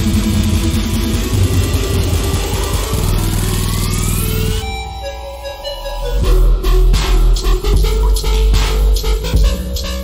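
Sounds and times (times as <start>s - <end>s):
rising synth sweep: 0.0s - 7.7s
growling bass dubstep music: 0.0s - 10.0s.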